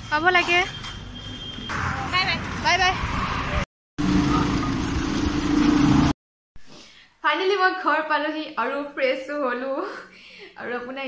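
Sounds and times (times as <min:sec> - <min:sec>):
road noise: 0:01.0 - 0:06.2.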